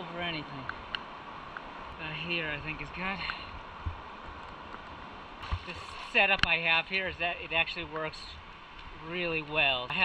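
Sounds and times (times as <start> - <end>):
river water flowing: 0.0 - 10.0.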